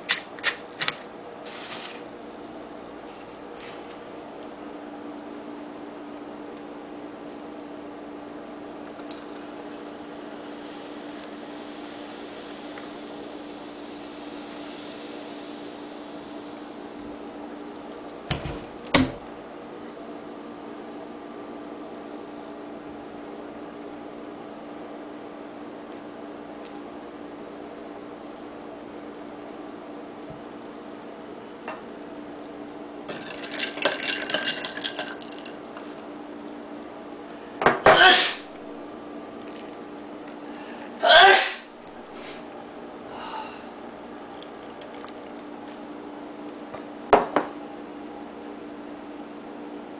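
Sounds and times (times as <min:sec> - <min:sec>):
steady hum: 0:00.0 - 0:49.9
soft fizz: 0:01.4 - 0:02.0
soda pouring onto ice: 0:01.5 - 0:02.0, 0:33.1 - 0:35.6.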